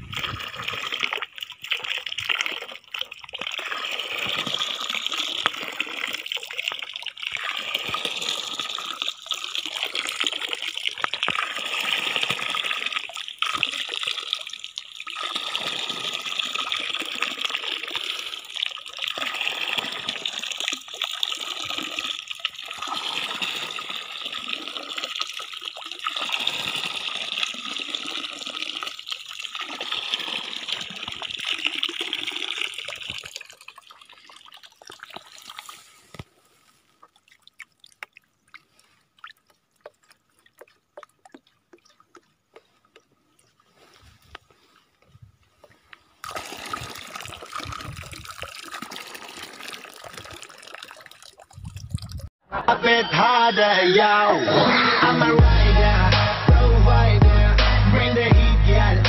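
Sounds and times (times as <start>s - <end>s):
water pouring into plastic can: 0.0s - 36.2s, 46.2s - 52.3s.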